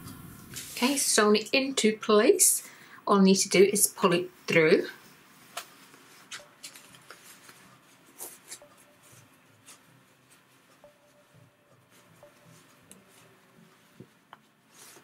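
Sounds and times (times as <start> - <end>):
fabric rustling: 5.3 - 15.0.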